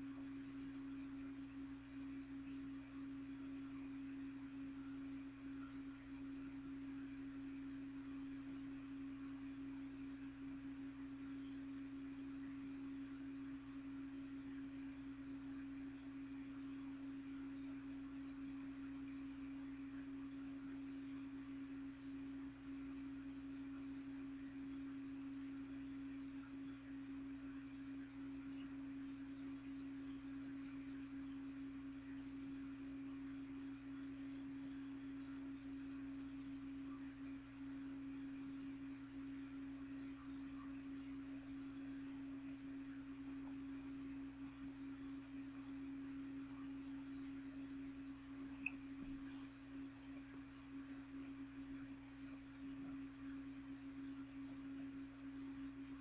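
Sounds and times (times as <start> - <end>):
faint steady hum: 0.0 - 56.0
weaker lower hum: 0.0 - 56.0.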